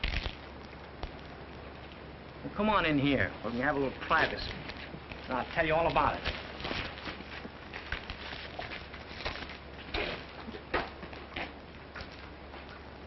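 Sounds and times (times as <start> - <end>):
film soundtrack hum and hiss: 0.0 - 13.0
footsteps: 3.4 - 12.8.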